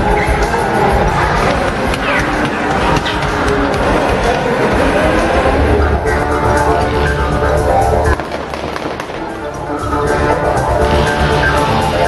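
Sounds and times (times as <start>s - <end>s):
loud music with heavy bass: 0.0s - 12.0s
crackling pops: 8.1s - 9.6s.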